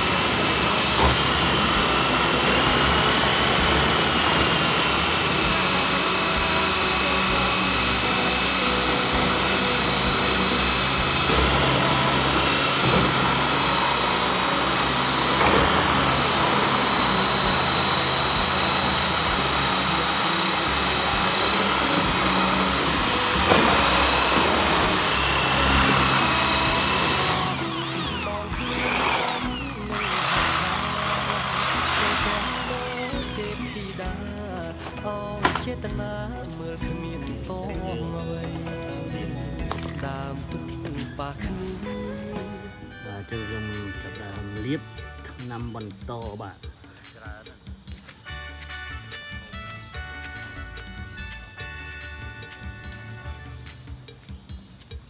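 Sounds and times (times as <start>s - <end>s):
electric drill mixing in bucket: 0.0s - 38.8s, 39.6s - 54.1s.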